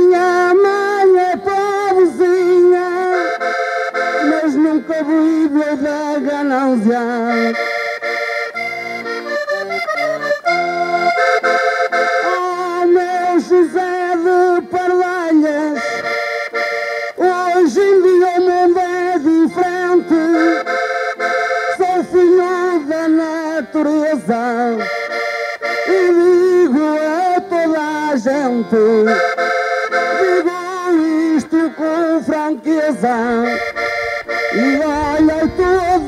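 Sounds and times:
accordion melody with chords: 0.0s - 36.0s.

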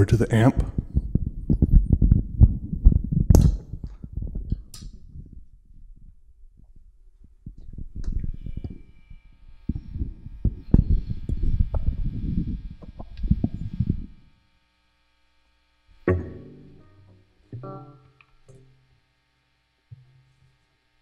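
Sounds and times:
microphone handling noise: 0.0s - 14.4s
electric guitar through amp: 7.5s - 14.4s, 15.9s - 19.0s.

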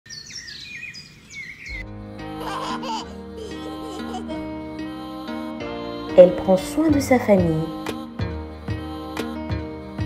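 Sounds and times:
birds chirping and singing: 0.1s - 1.9s
soft music with sustained chords: 1.7s - 10.0s
young child giggling: 2.3s - 4.5s.

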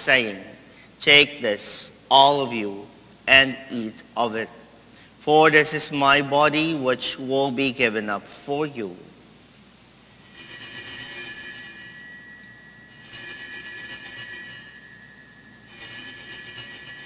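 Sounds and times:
altar bells jangling: 10.2s - 17.0s.

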